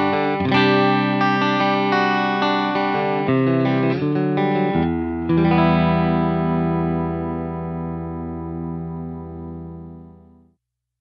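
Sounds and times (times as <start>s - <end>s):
clean electric guitar chord: 0.0s - 10.4s.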